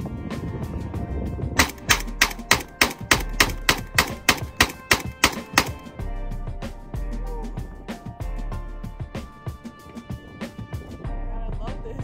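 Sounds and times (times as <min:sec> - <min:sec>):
rifle firing rapid shots: 0:01.6 - 0:05.9.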